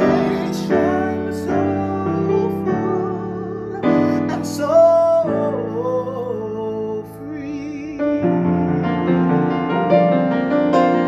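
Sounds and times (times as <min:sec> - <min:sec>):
man singing: 0:00.0 - 0:08.8
grand piano chords: 0:00.0 - 0:11.0.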